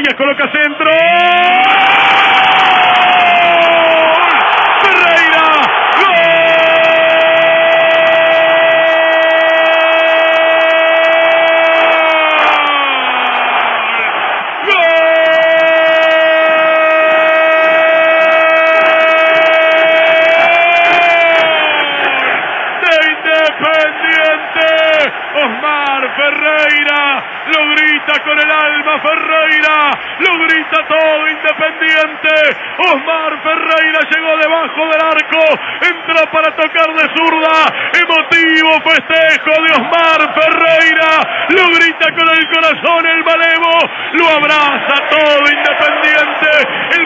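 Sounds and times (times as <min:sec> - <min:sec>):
crowd noise: 0:00.0 - 0:47.0
man shouting long goal cry: 0:00.0 - 0:47.0
excited shouting: 0:00.8 - 0:47.0.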